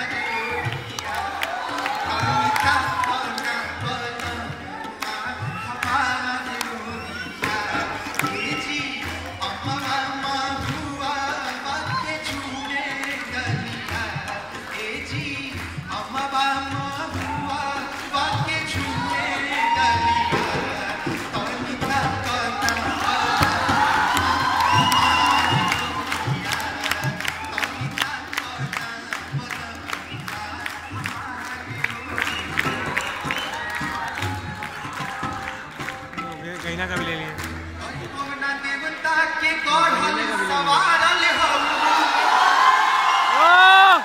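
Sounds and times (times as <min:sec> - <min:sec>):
audience cheering: 0:00.0 - 0:10.0, 0:17.1 - 0:35.8, 0:39.8 - 0:44.0
man's voice: 0:00.0 - 0:24.5, 0:25.5 - 0:32.8, 0:34.3 - 0:42.4
person singing into microphone: 0:00.0 - 0:41.2
tabla drumming: 0:00.0 - 0:41.5
people clapping: 0:00.0 - 0:44.0.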